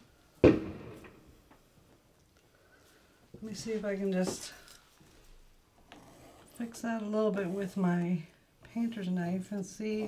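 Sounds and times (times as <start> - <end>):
thump: 0.4 - 1.2.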